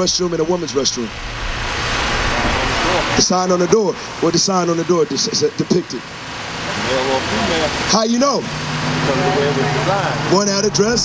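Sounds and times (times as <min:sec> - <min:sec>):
rush of noise: 0:00.0 - 0:11.0.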